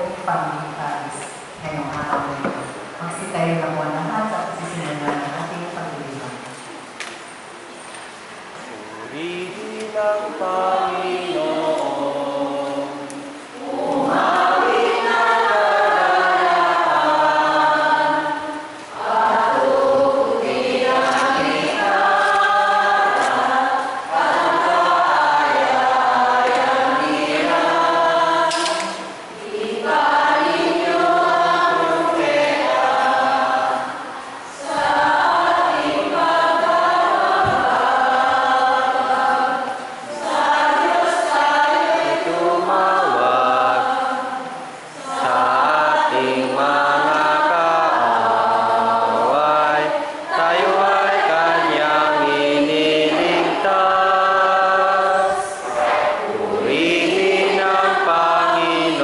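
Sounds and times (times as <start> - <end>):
church choir singing a hymn: 8.9 - 59.0.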